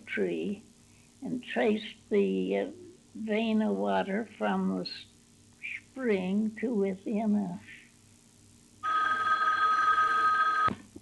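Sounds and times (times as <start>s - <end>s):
telephone ringing: 8.8s - 10.8s.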